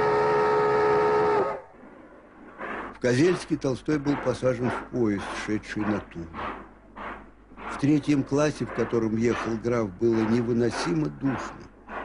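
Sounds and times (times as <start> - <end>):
steam locomotive whistle: 0.0 - 1.7
faint train rumble: 0.0 - 12.0.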